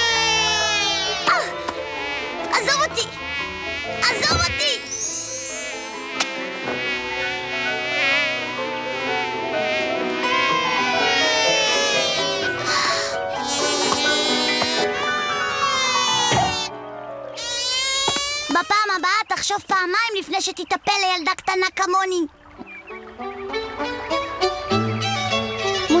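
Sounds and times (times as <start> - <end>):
cartoon bee buzzing: 0.0 - 16.8, 17.4 - 18.7.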